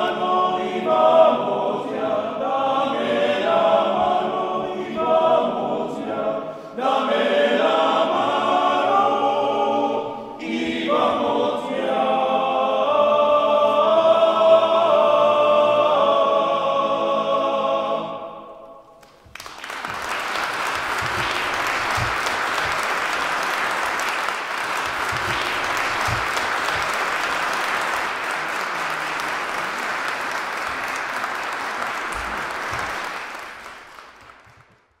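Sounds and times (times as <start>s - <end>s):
audience applauding: 19.0s - 34.9s.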